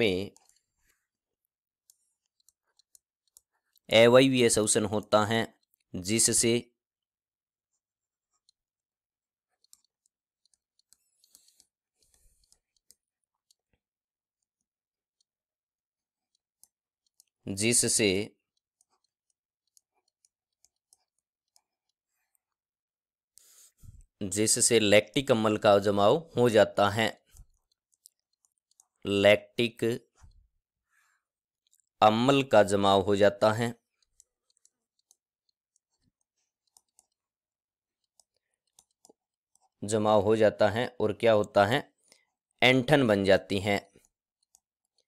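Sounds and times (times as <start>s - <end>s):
stylus ticking on drawing tablet: 0.0s - 45.0s.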